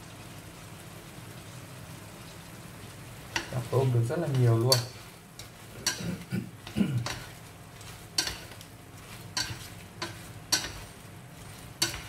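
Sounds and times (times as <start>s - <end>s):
prawns sizzling in frying pan: 0.0s - 12.0s
chopsticks clicking against pan: 3.3s - 3.7s, 4.3s - 11.0s, 11.7s - 12.0s.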